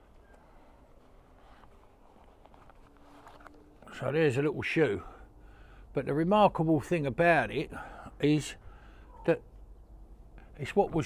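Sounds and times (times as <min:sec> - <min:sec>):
leather case being opened: 0:01.4 - 0:03.9.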